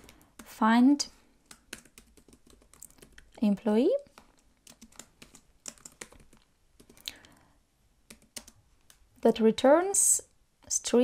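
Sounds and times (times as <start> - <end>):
keyboard typing: 1.4 - 3.4, 4.1 - 7.2, 8.1 - 9.0.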